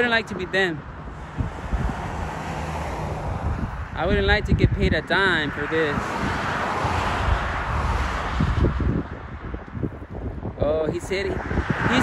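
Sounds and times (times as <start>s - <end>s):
steady rushing noise: 0.0s - 12.0s
wind rumbling on microphone: 0.0s - 12.0s.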